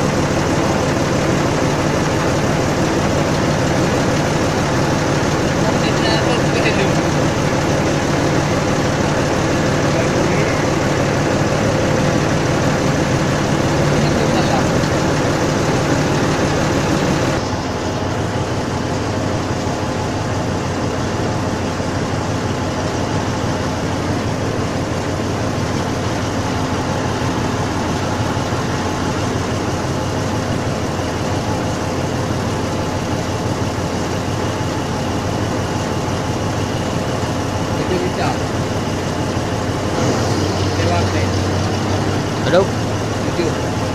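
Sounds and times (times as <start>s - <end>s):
crane truck engine running: 0.0s - 43.9s.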